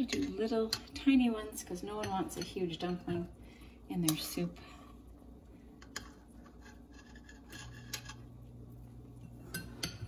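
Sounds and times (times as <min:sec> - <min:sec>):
low steady hum: 0:00.0 - 0:10.0
metal spoons scraping: 0:05.8 - 0:08.3.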